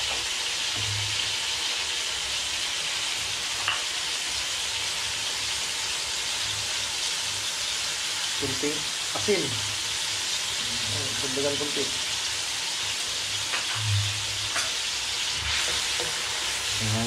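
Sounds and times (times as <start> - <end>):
pork sizzling in hot oil: 0.0 - 17.0.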